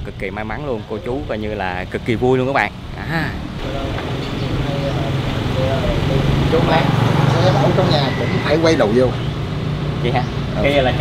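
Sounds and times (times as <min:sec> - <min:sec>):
people talking: 0:00.0 - 0:09.3, 0:10.0 - 0:11.0
car engine idling: 0:00.0 - 0:11.0.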